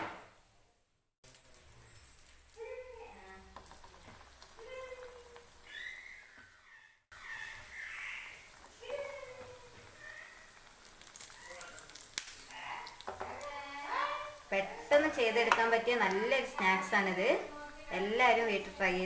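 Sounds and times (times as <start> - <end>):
dough sizzling in hot oil: 1.2 - 19.0.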